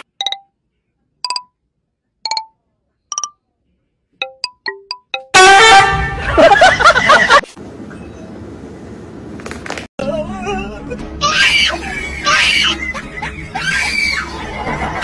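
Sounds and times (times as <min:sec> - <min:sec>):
loud blaring horn blast: 0:05.3 - 0:06.3.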